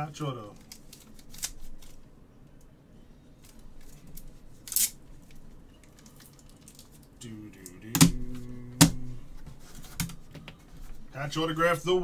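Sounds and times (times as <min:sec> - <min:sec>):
plastic card holders clicking: 0:08.0 - 0:09.0.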